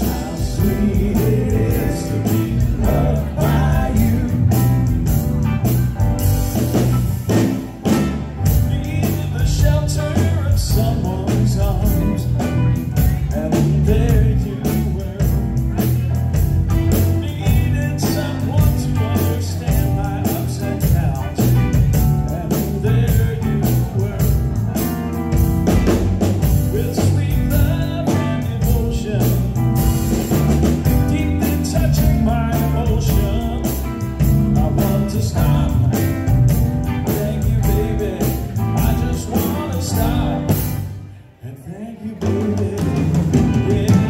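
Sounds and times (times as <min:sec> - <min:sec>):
live band playing soul-rock: 0:00.0 - 0:41.4, 0:42.0 - 0:44.0.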